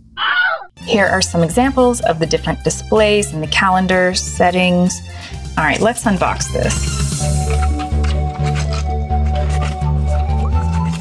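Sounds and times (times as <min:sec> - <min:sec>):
bass and keyboard notes: 0:00.0 - 0:11.0.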